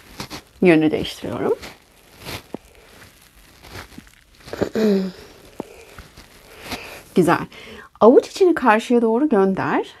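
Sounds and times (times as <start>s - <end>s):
clothing rustling: 0.0s - 7.4s
person humming: 4.5s - 5.3s.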